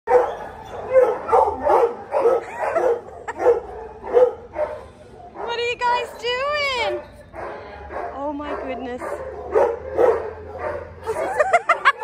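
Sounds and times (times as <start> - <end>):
dog whining cry: 0.1 - 4.3
dog barking and yipping: 0.1 - 12.0.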